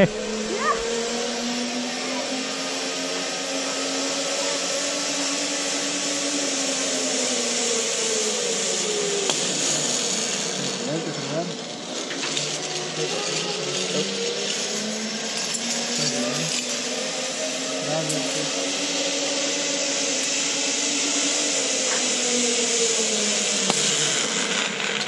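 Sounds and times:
zip line pulleys whirring: 0.0 - 25.0.

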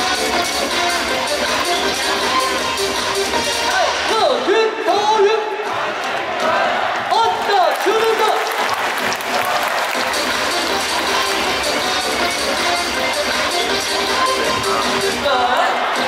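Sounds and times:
cheer song over loudspeakers: 0.0 - 16.0
crowd noise: 0.0 - 16.0
crowd shouting a chant: 3.4 - 7.9, 14.4 - 16.0.

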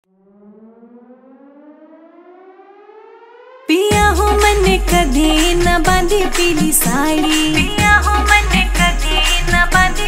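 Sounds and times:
rising tone with overtones: 0.0 - 3.7
folk dance track with heavy bass: 3.9 - 10.0.

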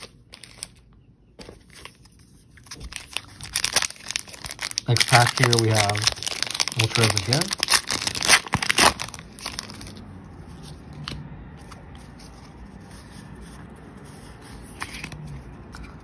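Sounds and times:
foil wrapper tearing and crinkling: 0.0 - 0.8, 2.6 - 10.0.

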